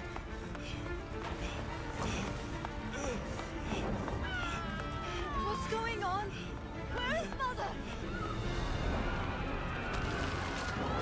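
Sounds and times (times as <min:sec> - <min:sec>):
soundtrack music: 0:00.0 - 0:11.0.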